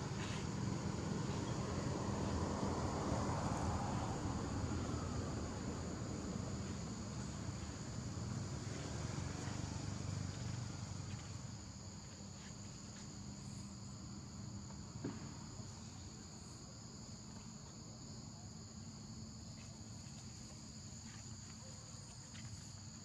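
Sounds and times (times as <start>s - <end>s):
insect chorus drone: 0.0s - 23.0s.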